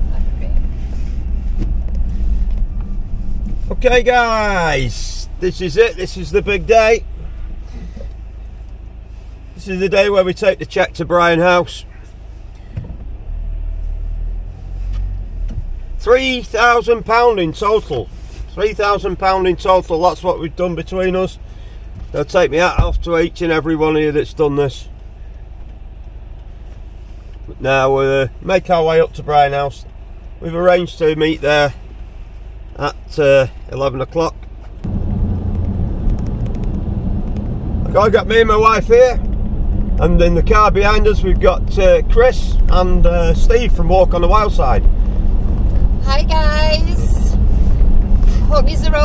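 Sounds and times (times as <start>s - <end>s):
traffic on wet road: 0.0s - 49.0s.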